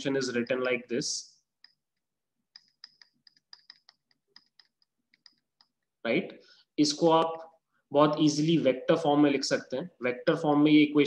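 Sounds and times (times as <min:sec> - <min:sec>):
stylus tapping on tablet: 0:01.5 - 0:05.9.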